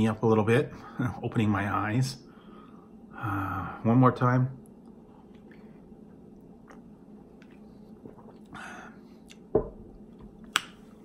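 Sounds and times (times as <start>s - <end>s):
mug set down thump: 9.6s - 9.8s.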